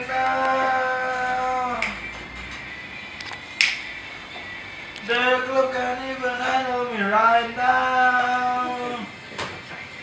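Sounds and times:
finger snap: 1.8 - 2.0, 3.6 - 3.9.

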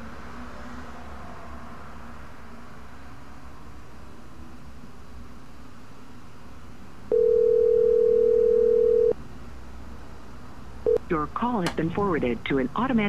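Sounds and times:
telephone ringing tone: 7.1 - 9.2, 10.8 - 11.0.

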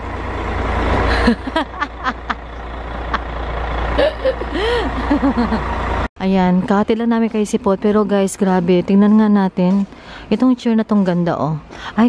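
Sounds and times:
bus engine rumbling: 0.0 - 12.0.

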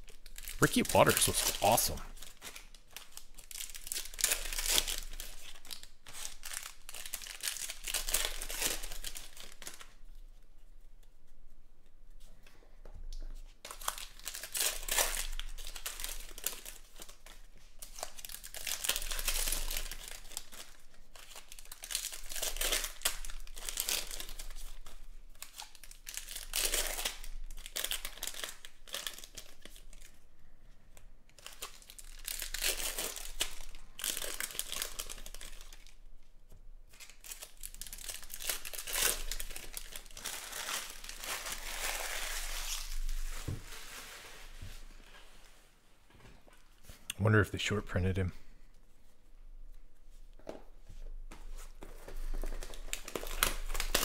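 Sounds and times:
foil wrappers tearing and crinkling: 2.2 - 9.9, 13.7 - 30.1, 31.4 - 36.0, 36.9 - 44.2, 51.8 - 54.0.

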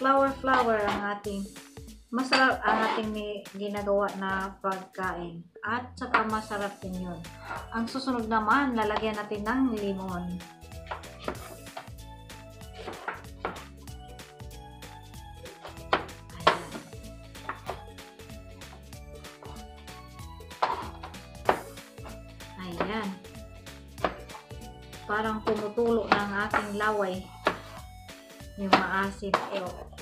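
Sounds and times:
background music: 0.0 - 30.0
knife cutting lemon: 27.3 - 27.9.

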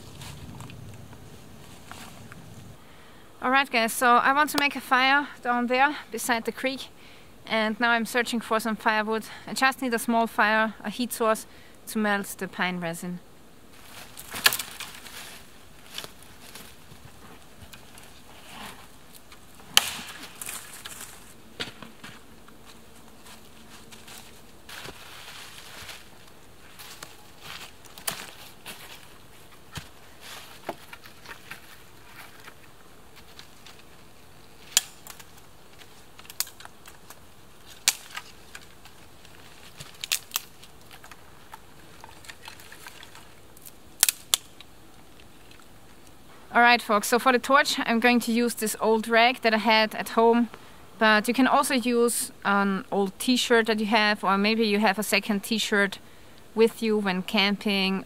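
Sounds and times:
dry leaves rustling: 13.7 - 46.0
dry wood snapping: 14.2 - 15.2, 19.1 - 21.9, 34.5 - 45.7.

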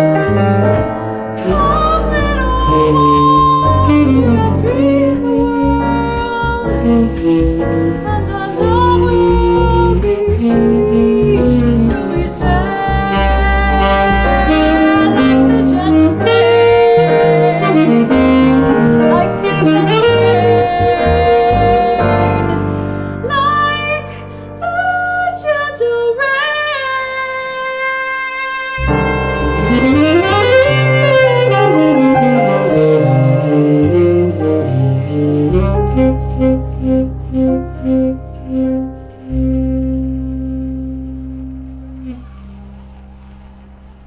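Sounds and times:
plucked upright bass: 0.0 - 22.6, 28.8 - 42.1
tenor saxophone jazz melody: 0.0 - 25.2, 28.2 - 44.0
piano chords: 0.0 - 44.0.

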